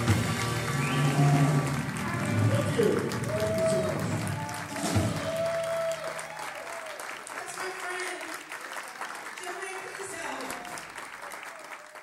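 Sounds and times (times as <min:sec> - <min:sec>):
upright bass notes: 0:00.0 - 0:04.3.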